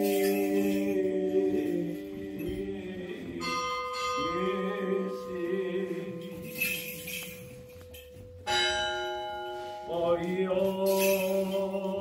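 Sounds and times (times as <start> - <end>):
church bell ringing: 3.2 - 12.0.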